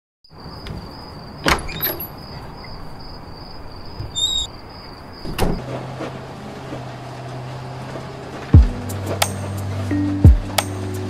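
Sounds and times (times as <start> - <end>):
bus rumble: 0.4 - 11.0
sharp clunk: 5.2 - 5.6.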